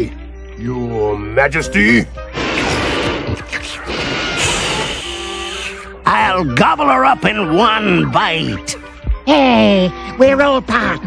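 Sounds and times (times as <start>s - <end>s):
cartoon flame blast: 2.3s - 5.9s.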